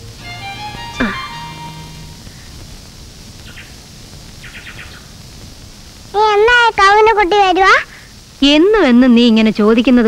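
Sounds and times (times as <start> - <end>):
low hiss: 0.0 - 10.0
faint bird chirps: 3.4 - 3.8, 4.4 - 5.2.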